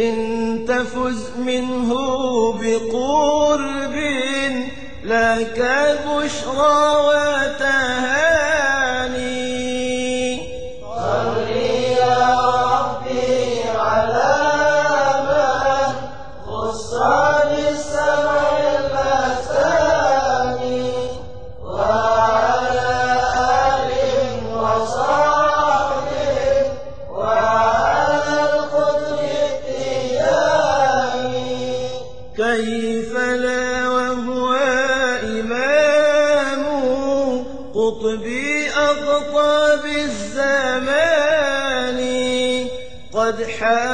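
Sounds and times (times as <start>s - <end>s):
person chanting devotional song: 0.0s - 43.9s.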